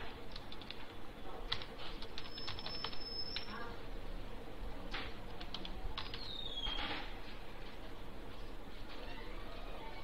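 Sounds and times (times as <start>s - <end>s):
typing on computer keyboard: 0.3s - 0.9s, 1.5s - 3.5s, 5.4s - 6.3s.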